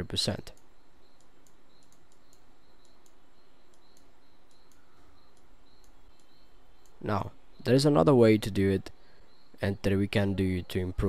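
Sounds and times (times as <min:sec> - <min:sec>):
light ticks: 0:00.4 - 0:07.0.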